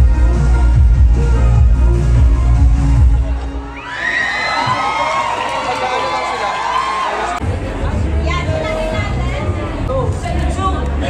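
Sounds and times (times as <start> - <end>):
dance track with heavy bass: 0.0 - 3.6
crowd screaming and cheering: 0.0 - 9.8.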